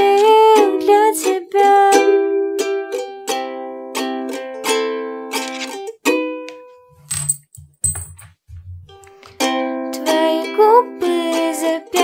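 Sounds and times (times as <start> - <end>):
ukulele chord strummed: 0.0 - 6.9, 8.6 - 12.0.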